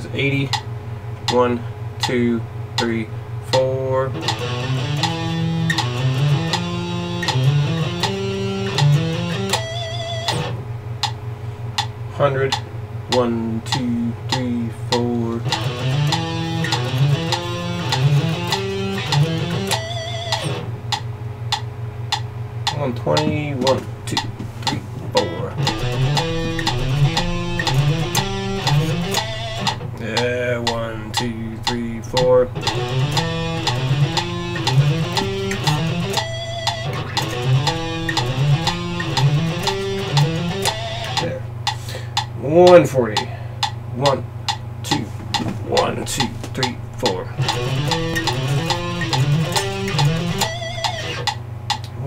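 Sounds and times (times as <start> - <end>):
metronome clicking: 2.0 - 2.2, 2.8 - 11.2, 12.5 - 52.0
electric guitar picking: 4.1 - 42.8, 43.5 - 52.0.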